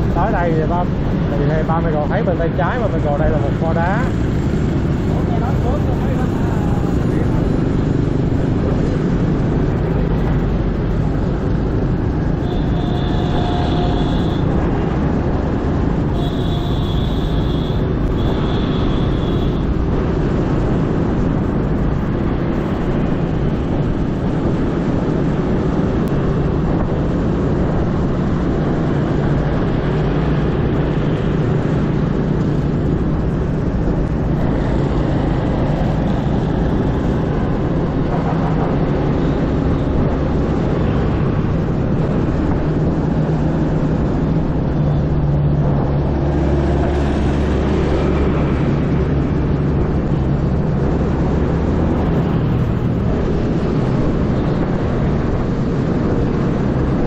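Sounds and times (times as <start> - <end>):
traffic noise: 0.0 - 57.0.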